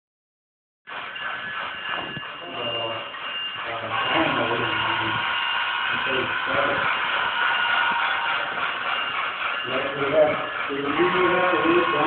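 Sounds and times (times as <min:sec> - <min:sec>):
indistinct voices talking: 0:01.2 - 0:12.0
steady high-pitched hum: 0:01.2 - 0:12.0.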